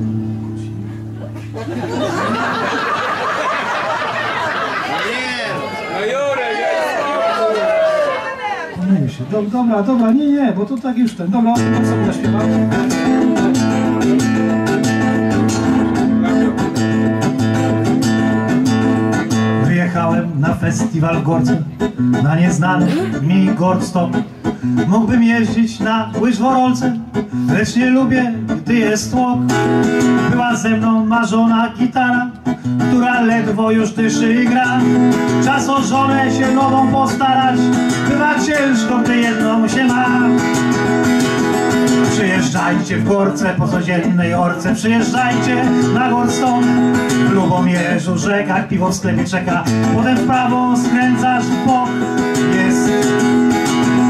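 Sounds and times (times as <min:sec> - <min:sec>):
acoustic guitar strumming: 0:00.0 - 0:02.4, 0:11.3 - 0:54.0
man singing long notes: 0:19.5 - 0:29.6, 0:30.2 - 0:40.7.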